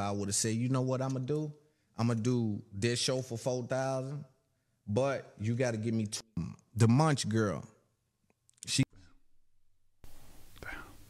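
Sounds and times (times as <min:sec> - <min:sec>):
low hiss: 0:10.0 - 0:11.0
faint whisper: 0:10.6 - 0:11.0.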